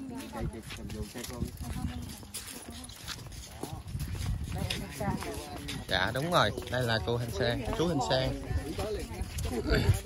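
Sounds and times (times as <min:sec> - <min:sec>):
faint voices of people: 0:00.0 - 0:10.0.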